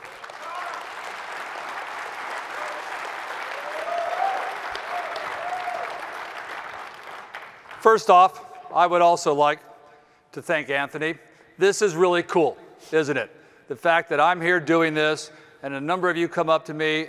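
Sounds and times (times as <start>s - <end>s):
audience applauding: 0.0s - 7.9s.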